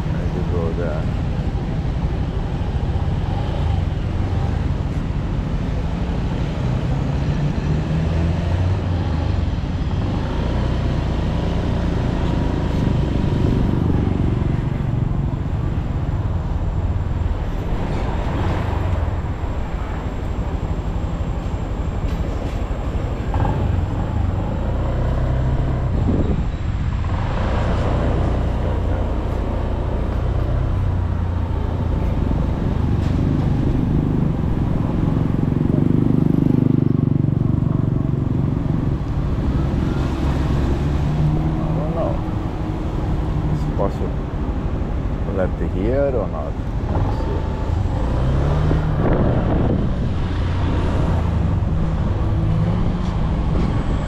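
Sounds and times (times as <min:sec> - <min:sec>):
road and traffic noise: 0:00.0 - 0:54.0.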